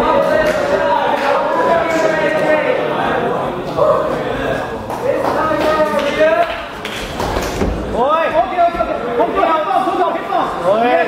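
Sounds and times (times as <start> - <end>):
men calling out in a hall: 0.0 - 6.8, 7.7 - 11.0.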